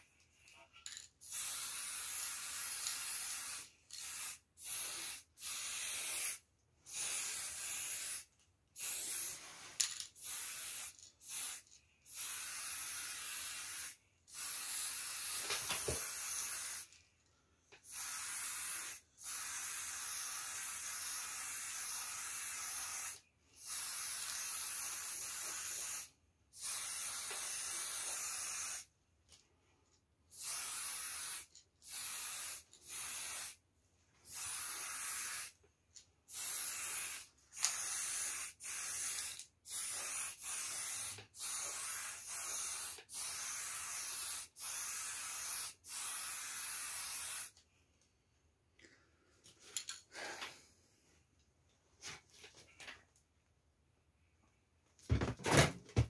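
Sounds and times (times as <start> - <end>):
spray paint can hissing: 1.2 - 17.0, 17.8 - 28.9, 30.3 - 33.6, 34.3 - 35.6, 36.3 - 47.6.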